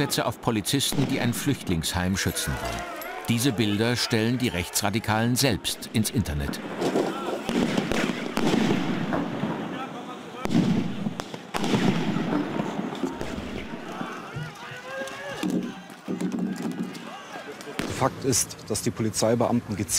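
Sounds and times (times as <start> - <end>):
crowd shouting: 0.0 - 8.5, 11.6 - 18.0
firecrackers banging: 6.3 - 18.5.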